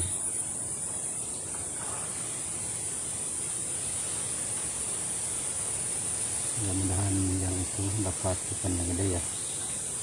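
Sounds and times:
high-pitched insect drone: 0.0s - 10.0s
outdoor background hiss: 0.0s - 10.0s.

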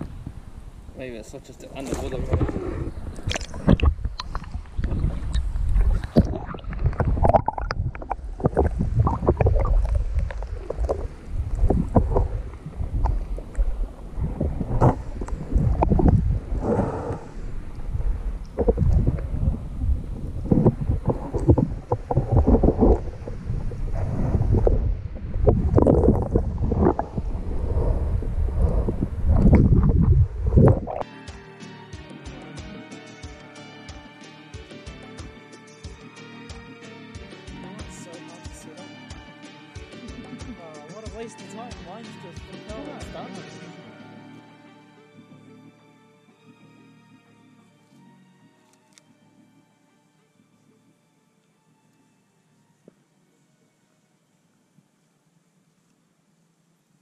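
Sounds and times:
water rushing underwater: 1.7s - 31.0s
music: 31.0s - 54.8s.

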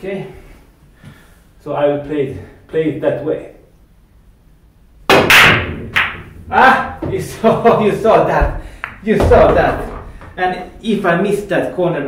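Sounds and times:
cue striking ball: 5.1s - 7.1s
pool balls smashing into rack: 5.1s - 7.2s
pool balls clattering: 5.9s - 10.7s.

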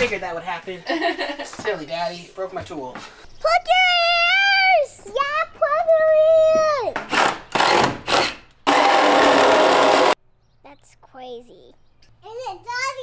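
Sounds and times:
cordless power tool burst: 7.1s - 10.2s.

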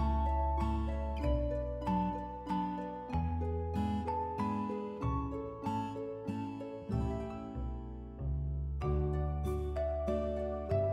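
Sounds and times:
plucked string music with bass: 0.0s - 10.9s.

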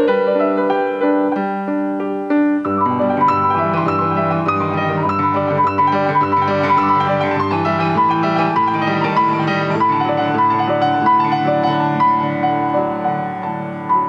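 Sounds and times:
loud piano chord ringing: 0.0s - 14.0s
solo grand piano: 0.0s - 14.0s.

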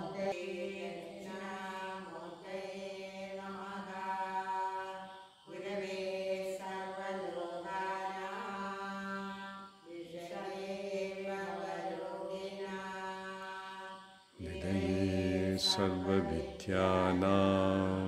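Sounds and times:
person chanting long steady notes: 0.0s - 18.0s.

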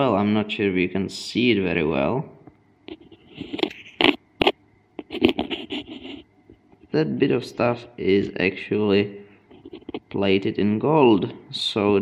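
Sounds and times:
circuit board scraping: 2.8s - 7.0s, 9.3s - 10.4s.

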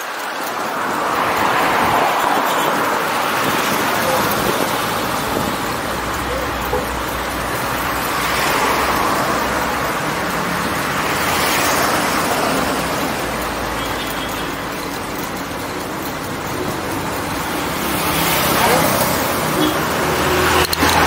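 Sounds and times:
road traffic: 0.0s - 21.0s.

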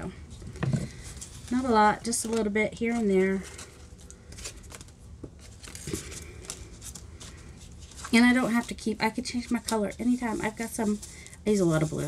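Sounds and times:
paper rustling: 0.8s - 12.0s.

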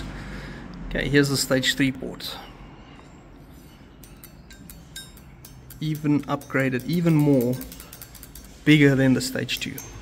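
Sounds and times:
metal calipers clicking and scraping: 3.0s - 10.0s.

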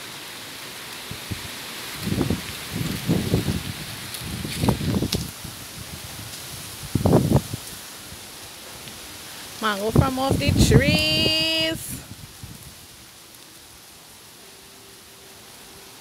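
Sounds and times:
leaves and branches rustling: 0.0s - 16.0s
steady outdoor hiss: 0.0s - 16.0s.

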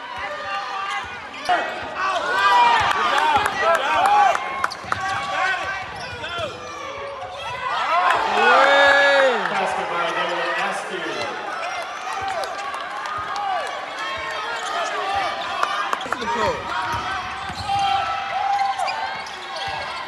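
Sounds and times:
sneakers squeaking on court: 4.7s - 7.8s, 14.1s - 20.0s.

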